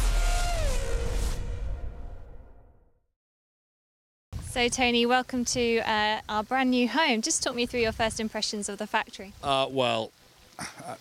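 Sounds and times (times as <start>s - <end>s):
deep rumble: 0.0s - 2.8s
whoosh: 0.0s - 2.8s.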